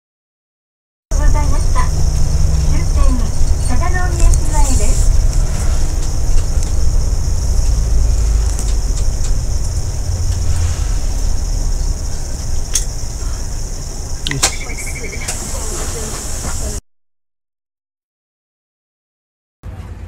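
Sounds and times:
bus engine rumble: 0:01.1 - 0:16.8, 0:19.6 - 0:20.0
road noise: 0:01.1 - 0:16.8
person talking: 0:02.6 - 0:05.2, 0:14.2 - 0:16.8.

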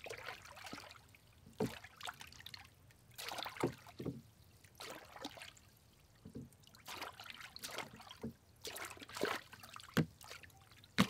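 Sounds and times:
oar splashing in water: 0:00.0 - 0:02.6, 0:03.2 - 0:05.6, 0:06.3 - 0:11.0.

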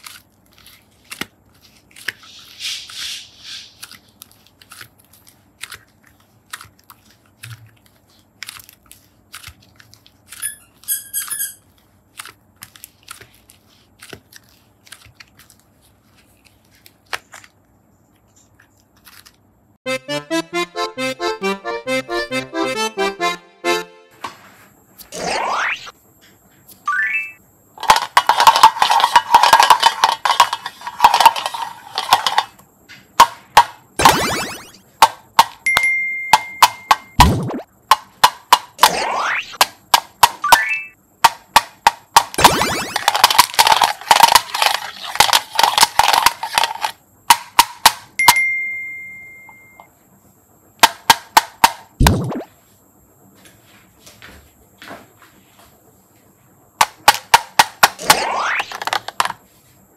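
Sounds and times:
plastic beads rattling on metal: 0:27.8 - 0:32.6, 0:42.1 - 0:47.0
high chime-like tone: 0:48.2 - 0:49.9.

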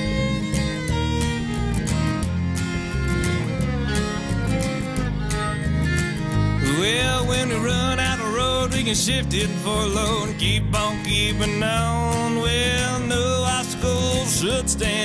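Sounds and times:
country song instrumental: 0:00.0 - 0:15.0
fiddle: 0:00.0 - 0:15.0.

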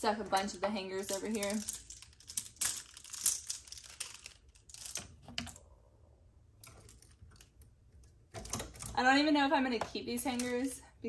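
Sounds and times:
clothes hangers clattering: 0:00.0 - 0:05.6.

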